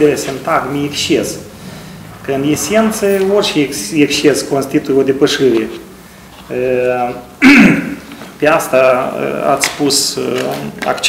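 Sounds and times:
man clearing throat: 7.4 - 8.1.

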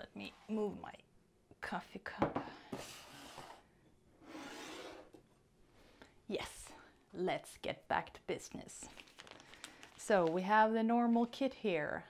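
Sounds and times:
mug scraping across table: 2.7 - 3.6, 4.2 - 5.2.

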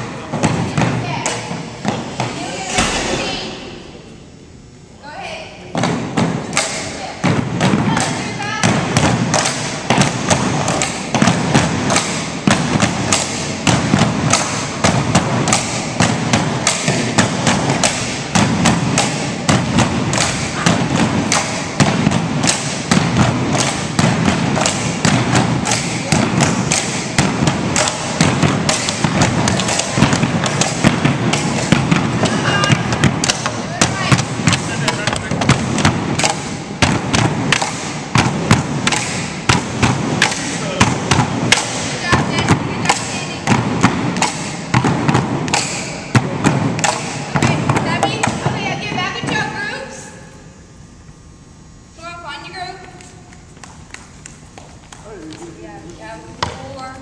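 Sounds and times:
bamboo poles knocking rhythmically: 5.7 - 49.4.

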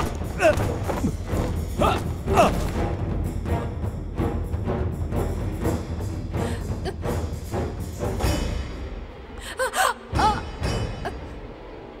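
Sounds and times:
soft background music: 0.0 - 12.0
woman gasping cries: 9.4 - 11.2.

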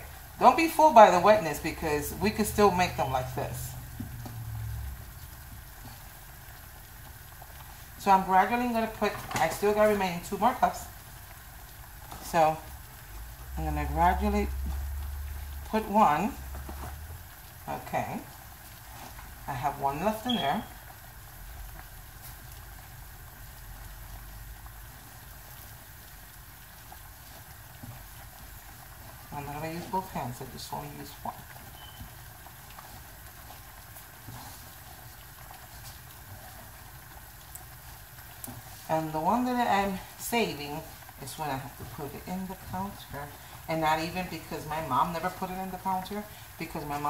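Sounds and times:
soft dough squishing: 0.0 - 47.0.

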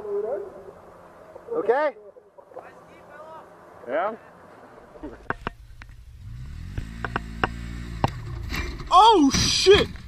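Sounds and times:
off-road vehicle engine: 0.0 - 10.0
knocks and clatters: 5.2 - 6.0, 6.7 - 10.0.

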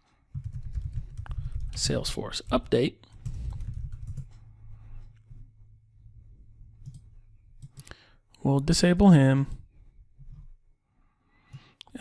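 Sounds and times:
low steady hum: 2.6 - 10.8.

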